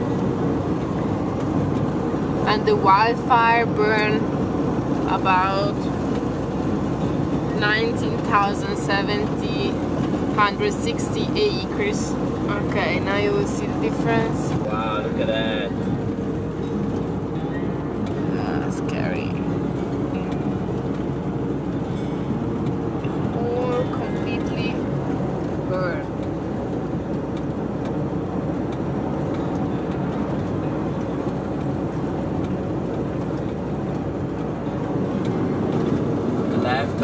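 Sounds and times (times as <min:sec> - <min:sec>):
road and engine noise in cab: 0:00.0 - 0:37.0.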